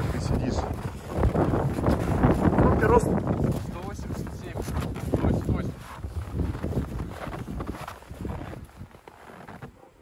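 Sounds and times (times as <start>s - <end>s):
wind buffeting microphone: 0.0s - 9.5s.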